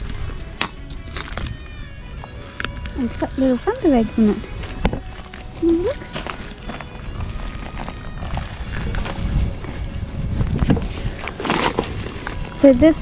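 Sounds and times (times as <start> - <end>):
faint background music: 0.0 - 13.0
footsteps on gravel: 1.0 - 12.7.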